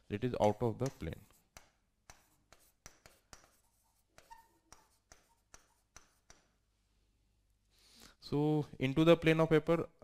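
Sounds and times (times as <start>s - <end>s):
pen tapping on screen: 0.4s - 3.6s, 4.2s - 6.5s.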